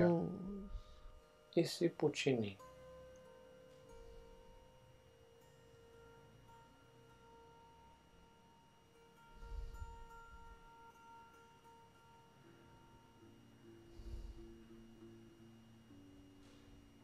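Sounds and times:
soft ringing drone: 0.0 - 17.0.

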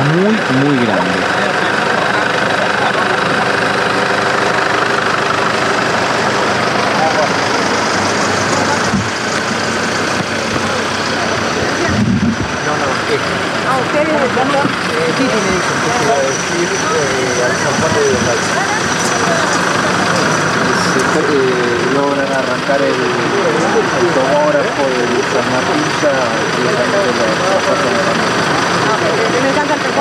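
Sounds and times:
people talking: 0.0 - 30.0
vehicle engine idling: 0.0 - 30.0.

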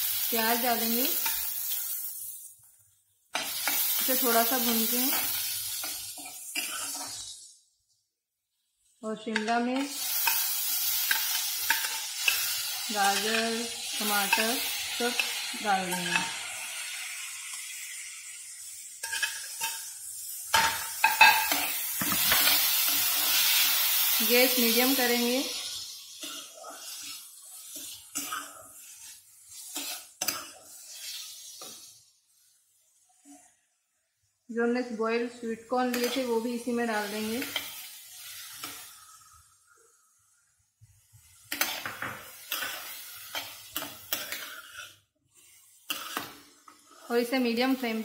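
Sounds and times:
onions sizzling in a pan: 0.0 - 48.0
vegetables frying: 0.0 - 48.0
spatula scraping a pan: 3.4 - 7.6, 9.8 - 16.7, 19.0 - 32.0, 35.9 - 39.3, 41.2 - 47.4.

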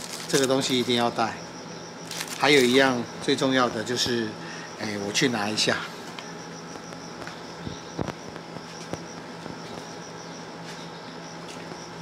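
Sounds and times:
insects buzzing: 0.0 - 12.0
low steady hum: 0.0 - 12.0.

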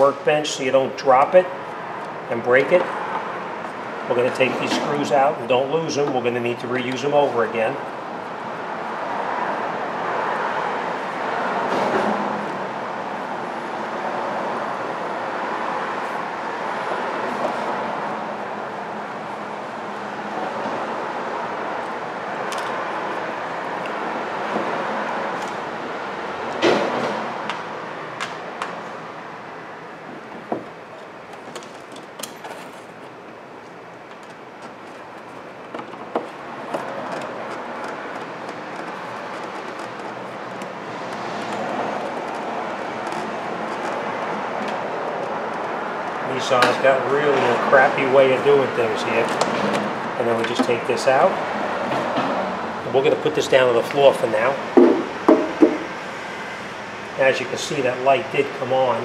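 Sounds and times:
steady background noise: 0.0 - 59.0.

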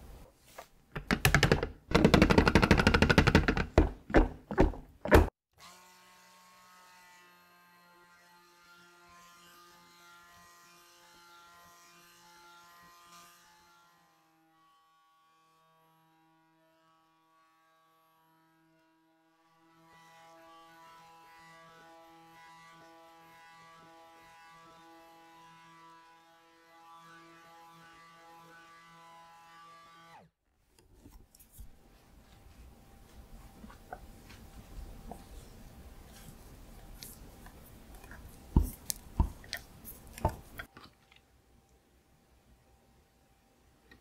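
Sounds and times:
blender head knocking on glass: 1.0 - 5.3.

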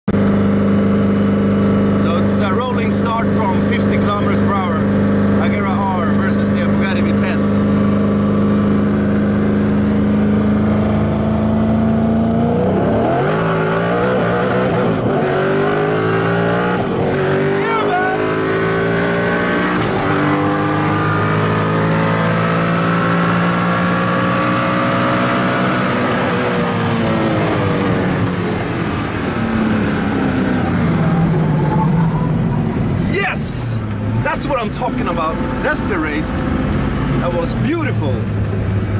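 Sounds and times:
car engine accelerating: 0.1 - 38.9.

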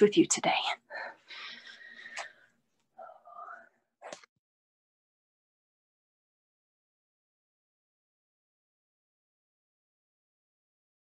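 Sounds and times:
woman whispering: 0.0 - 1.3, 3.0 - 4.2.

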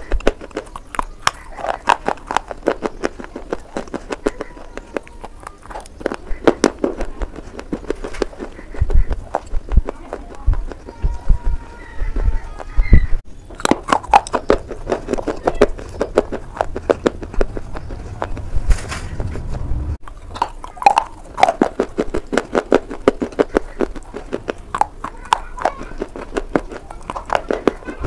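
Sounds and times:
crunching and chewing slate: 0.0 - 28.0
low thuds: 16.5 - 20.0.

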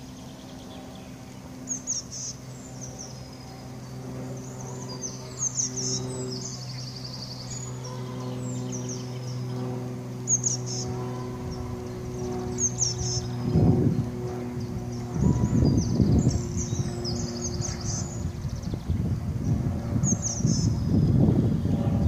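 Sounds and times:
songbirds chirping and trilling: 0.0 - 22.0
steady low hum: 0.0 - 22.0.

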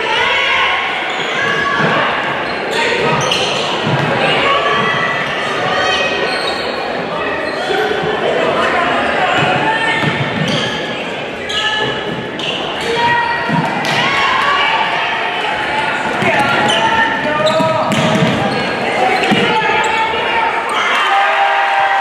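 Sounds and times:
players and crowd calling out: 0.0 - 22.0
ball bouncing on wooden court: 17.4 - 18.6.

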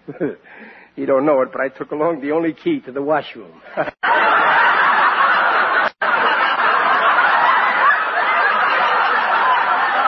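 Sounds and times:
audience laughing: 3.6 - 10.0.

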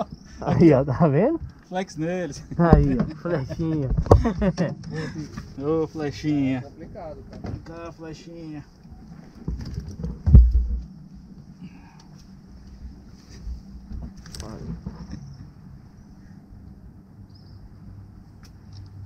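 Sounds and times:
heavy low thump: 9.5 - 11.0.

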